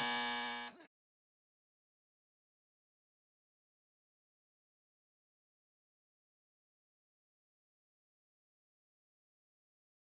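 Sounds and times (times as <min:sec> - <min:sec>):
electronic buzzing tone: 0:00.0 - 0:00.8.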